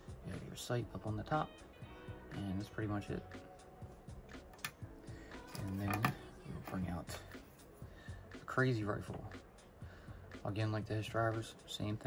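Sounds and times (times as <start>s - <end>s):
quiet background music: 0.0s - 12.0s
wordless vocal sounds: 2.2s - 8.5s.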